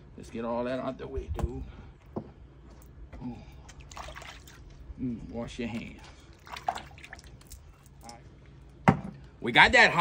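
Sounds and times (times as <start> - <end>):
water dripping and splashing: 3.6 - 4.8, 5.6 - 8.2.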